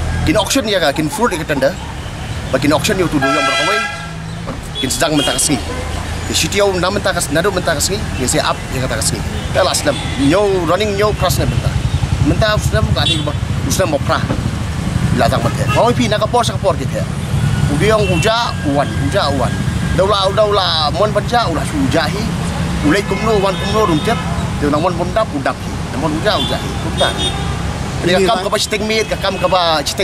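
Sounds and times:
road traffic rumble: 0.0 - 30.0
man speaking: 0.2 - 1.8, 2.5 - 4.0, 4.7 - 14.3, 15.1 - 17.1, 17.7 - 27.3, 28.0 - 30.0
man talking: 0.2 - 1.8, 2.5 - 4.0, 4.6 - 14.4, 15.1 - 17.1, 17.7 - 27.3, 28.0 - 30.0
vehicle horn honking: 3.0 - 5.9, 15.4 - 16.0, 26.3 - 29.8.

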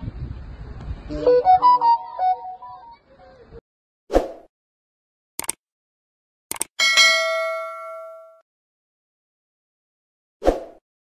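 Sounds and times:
notification bell ding: 6.8 - 8.4.

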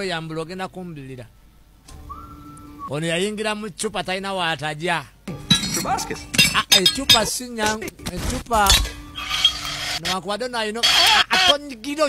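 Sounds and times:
whistle-like tone: 2.0 - 2.9.

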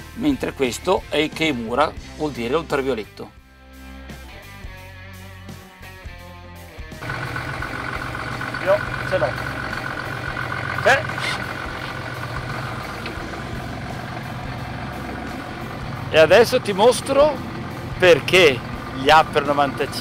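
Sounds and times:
music: 0.0 - 10.3, 12.4 - 20.0
boat engine idling: 7.0 - 20.0.

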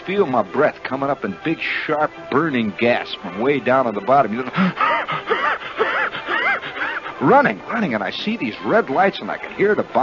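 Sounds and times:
man gasping for breath: 4.5 - 7.2.

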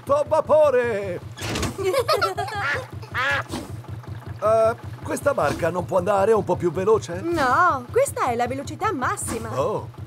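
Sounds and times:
boat engine chugging: 0.0 - 10.0
cartoon duck quacking: 2.6 - 3.5.

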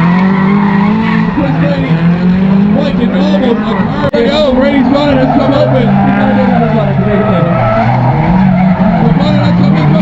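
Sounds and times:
car engines at high revs: 0.0 - 10.0
tyres skidding and squealing: 0.0 - 10.0.

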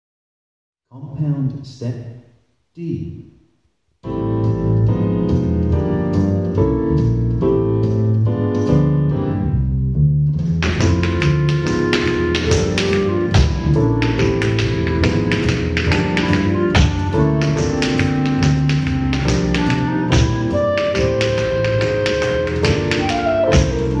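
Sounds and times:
swing piano music: 4.0 - 24.0
tap shoes on hard floor: 10.6 - 24.0.

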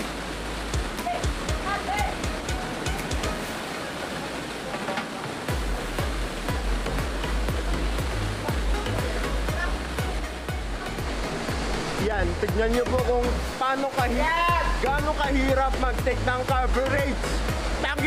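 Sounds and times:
waterfall rushing: 0.0 - 18.0
background music with beat: 0.6 - 3.7, 5.4 - 18.0
deep bass notes: 5.5 - 13.6.

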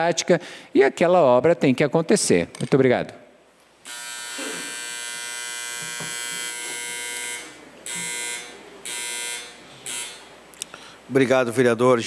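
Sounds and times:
electric buzzer buzzing: 3.8 - 10.4.

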